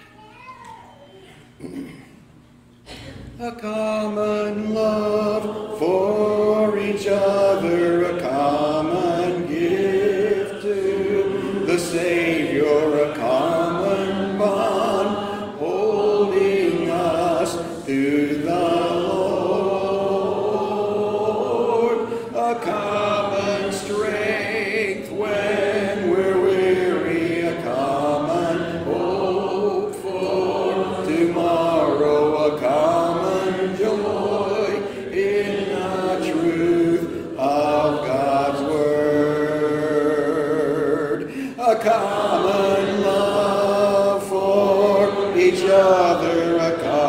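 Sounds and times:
congregation singing a hymn: 2.9s - 47.0s.

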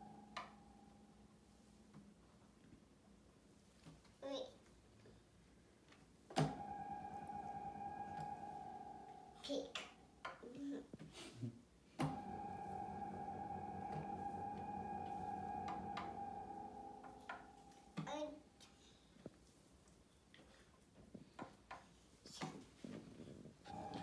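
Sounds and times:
synthesizer held notes: 0.0s - 1.5s, 6.4s - 10.2s, 12.0s - 18.6s, 23.7s - 24.0s.

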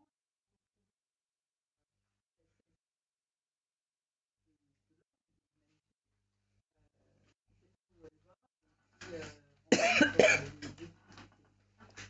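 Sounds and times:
person coughing: 9.7s - 10.6s.

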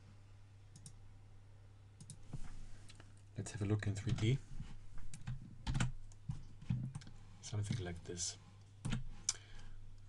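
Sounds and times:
low steady hum: 0.0s - 10.0s
computer mouse clicks: 0.7s - 1.0s, 2.0s - 2.2s.

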